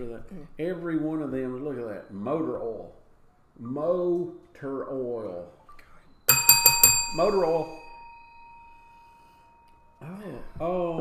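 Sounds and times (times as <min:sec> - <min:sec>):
wine glass ringing: 0:06.3 - 0:09.9.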